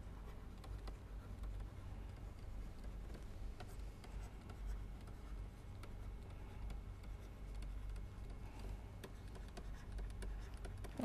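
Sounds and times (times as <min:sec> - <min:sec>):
stylus scratching on pen tablet: 0:00.0 - 0:08.4, 0:09.0 - 0:11.0
steady low hum: 0:00.0 - 0:11.0.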